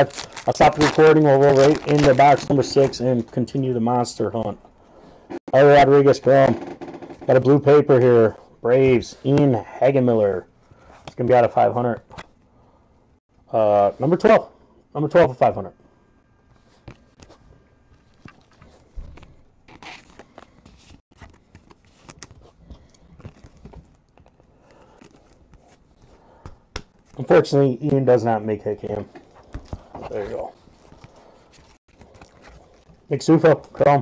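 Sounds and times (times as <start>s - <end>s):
cards clicking and rustling: 0.0s - 3.4s, 18.0s - 25.8s.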